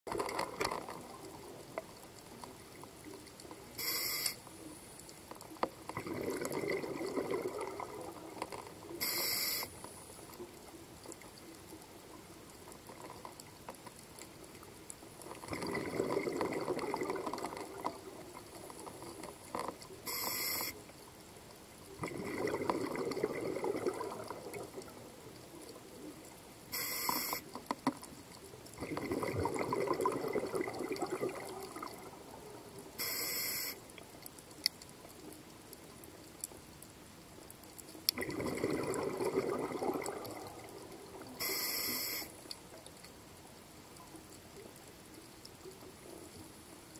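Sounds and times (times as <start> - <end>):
regulator inhale hiss: 3.8 - 5.0, 9.0 - 10.2, 20.0 - 20.8, 26.7 - 27.5, 33.0 - 33.8, 41.4 - 42.4
exhaled bubbles rushing underwater: 5.9 - 9.0, 15.3 - 19.2, 22.0 - 26.0, 28.8 - 33.0, 38.2 - 41.5.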